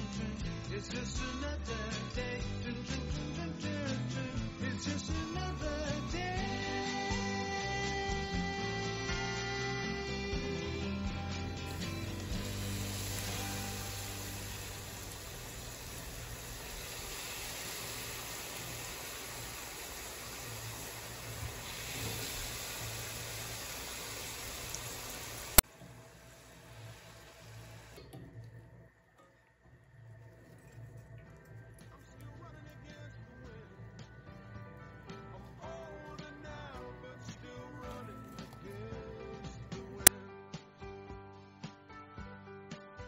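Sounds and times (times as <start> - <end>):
background music: 0.0 - 43.0
dough frying in hot oil: 8.4 - 28.5.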